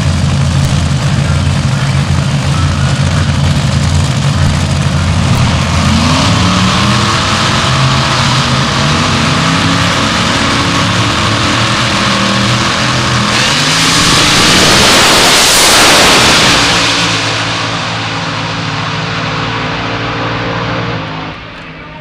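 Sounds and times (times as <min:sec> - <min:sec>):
dragster engine revving to a roar: 0:00.0 - 0:22.0.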